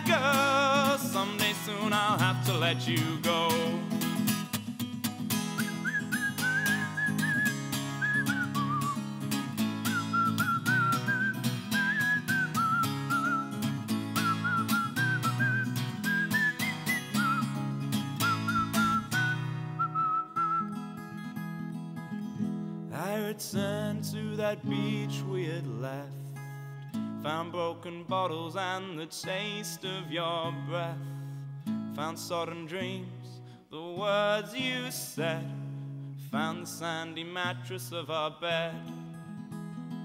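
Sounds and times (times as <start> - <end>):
strummed acoustic guitar: 0.0 - 40.0
man whistling a melody: 5.4 - 21.1.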